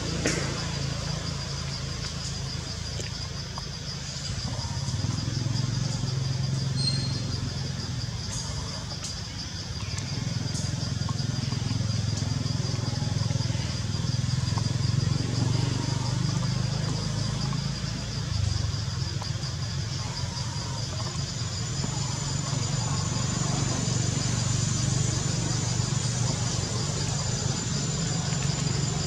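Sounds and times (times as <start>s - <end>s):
high pulsing insect buzz: 0.0s - 29.0s
low engine rumble: 0.0s - 29.0s.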